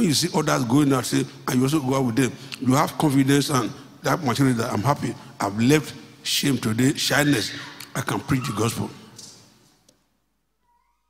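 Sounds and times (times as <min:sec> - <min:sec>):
man's voice through microphone: 0:00.0 - 0:09.2.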